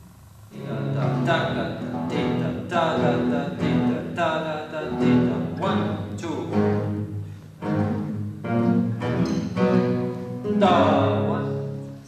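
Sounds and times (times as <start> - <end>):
classical guitars strumming chords: 0.0 - 12.0.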